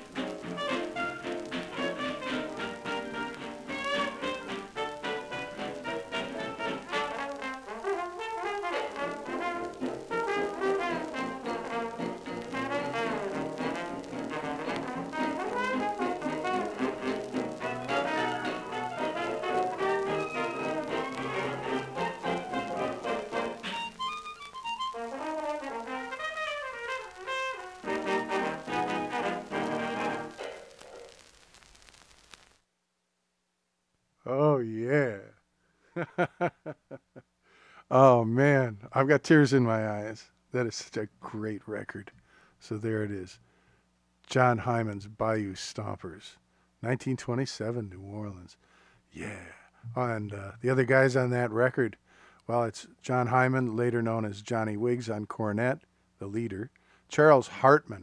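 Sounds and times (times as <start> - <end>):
jazz band playing: 0.0 - 30.4
record surface crackle: 0.0 - 33.5, 36.0 - 37.3, 49.2 - 58.0.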